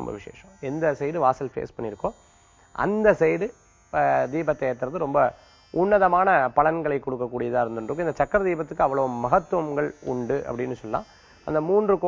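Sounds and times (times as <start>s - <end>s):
man speaking: 0.0s - 2.2s, 2.8s - 12.0s.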